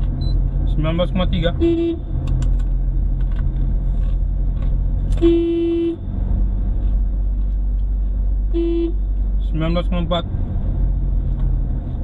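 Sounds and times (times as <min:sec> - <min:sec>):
car engine and road rumble: 0:00.0 - 0:12.0
short car horn toot: 0:01.6 - 0:02.0, 0:05.2 - 0:06.0, 0:08.5 - 0:09.0.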